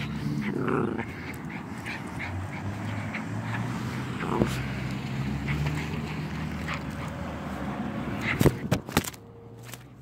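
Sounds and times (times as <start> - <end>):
small dog growling: 0.0 - 6.6.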